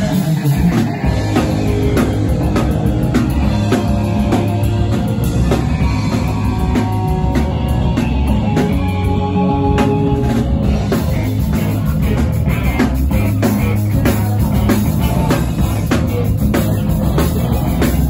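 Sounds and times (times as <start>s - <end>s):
punk rock band playing: 0.0s - 18.0s.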